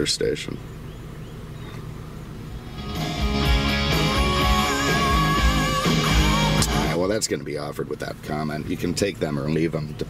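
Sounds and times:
guitar music on car radio: 0:02.7 - 0:07.2.

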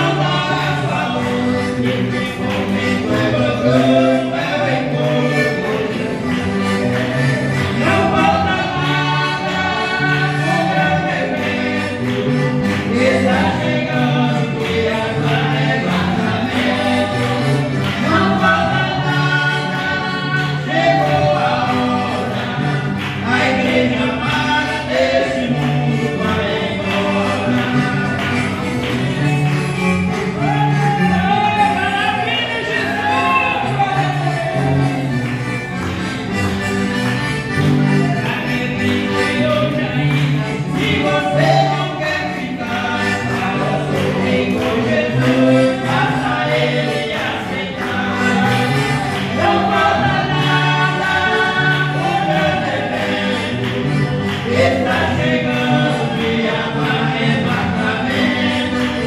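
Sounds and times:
woman and man singing gospel: 0:00.0 - 0:29.3, 0:38.0 - 0:59.0
piano accordion: 0:00.0 - 0:59.0.

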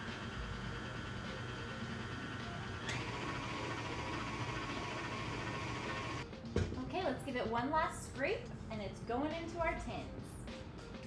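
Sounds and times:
stand mixer running: 0:00.0 - 0:06.2.

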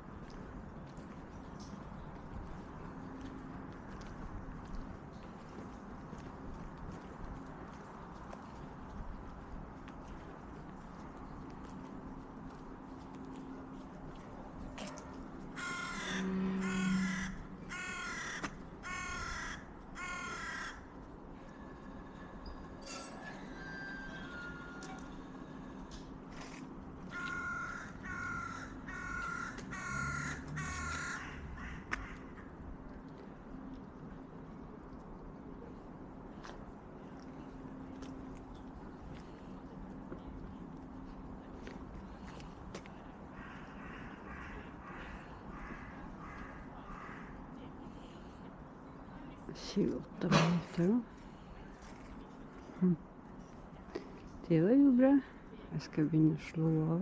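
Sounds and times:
crow cawing: 0:15.6 - 0:20.8, 0:27.1 - 0:32.4, 0:43.4 - 0:47.4.

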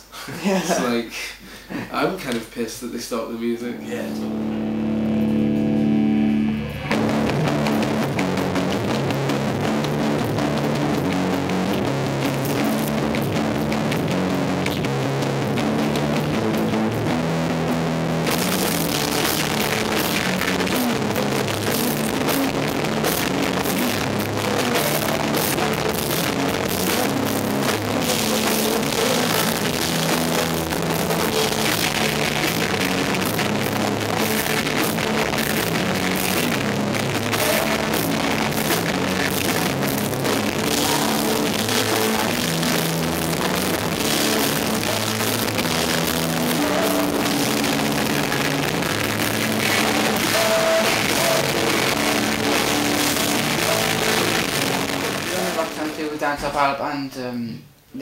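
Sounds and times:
electric bass: 0:03.3 - 0:56.3
electric guitar: 0:03.6 - 0:56.5.

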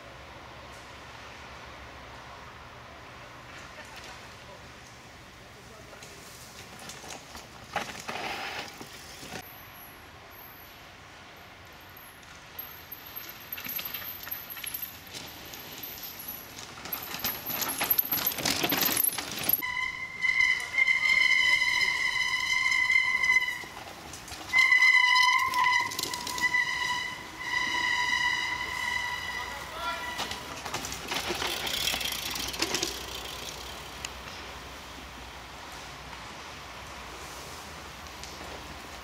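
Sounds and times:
bicycles rattling over dirt: 0:05.8 - 0:10.8, 0:11.9 - 0:35.5
high steady horn-like tone: 0:19.6 - 0:30.4.

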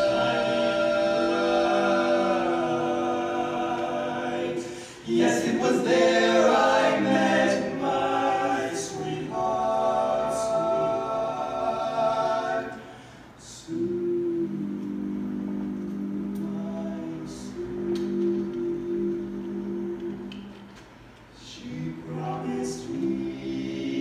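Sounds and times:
barbershop quartet singing a cappella: 0:00.0 - 0:24.0.

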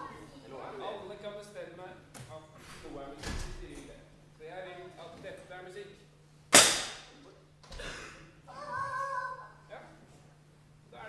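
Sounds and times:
children's voices chattering: 0:00.0 - 0:00.7
loud sharp crack: 0:06.5 - 0:07.2.

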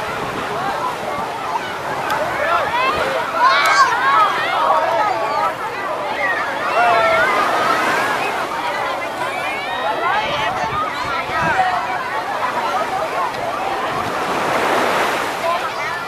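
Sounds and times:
crowd voices chattering and calling: 0:00.0 - 0:16.0
waves washing: 0:00.0 - 0:16.0.

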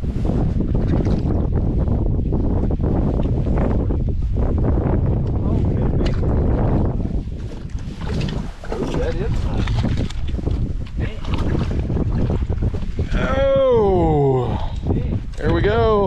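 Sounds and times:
wind buffeting microphone: 0:00.0 - 0:16.0
person exclaiming: 0:13.2 - 0:14.5.

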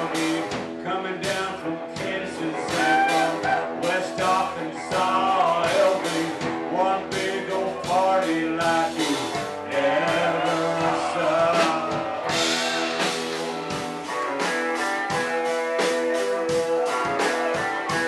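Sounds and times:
acoustic and electric guitars: 0:00.0 - 0:18.0
drum kit steady beat: 0:00.0 - 0:18.0.

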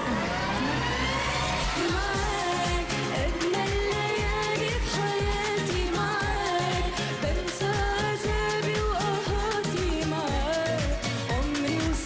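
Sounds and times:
woman singing pop song: 0:00.0 - 0:12.0
band with low beat: 0:01.6 - 0:12.0.

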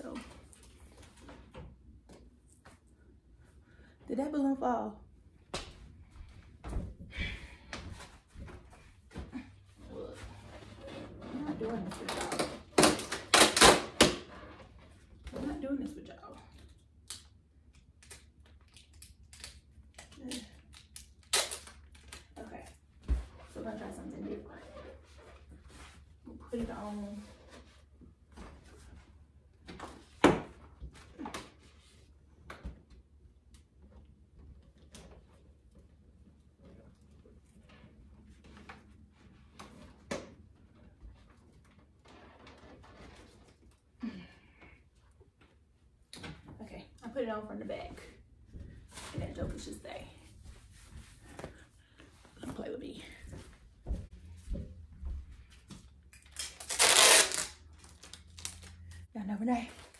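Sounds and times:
tape ripping off a roll: 0:11.9 - 0:14.5, 0:17.0 - 0:22.4, 0:56.2 - 0:59.0
balloons rustling: 0:56.3 - 0:59.9.

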